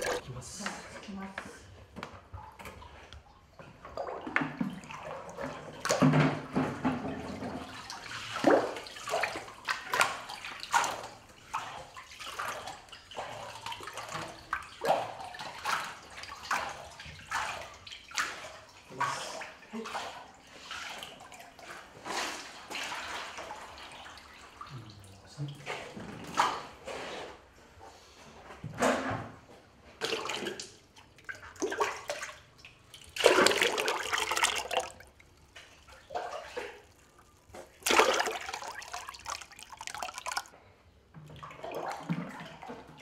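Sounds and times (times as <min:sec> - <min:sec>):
water sloshing and splashing: 0:00.0 - 0:43.0.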